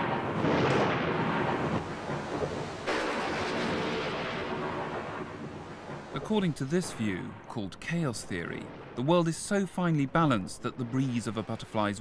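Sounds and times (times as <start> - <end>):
rumbling thunder: 0.0 - 9.6.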